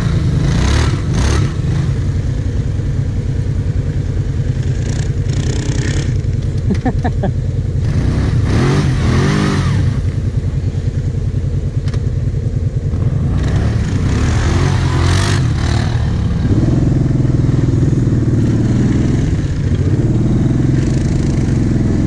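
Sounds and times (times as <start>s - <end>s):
quad bike engine revving: 0.0s - 10.8s, 12.9s - 22.0s.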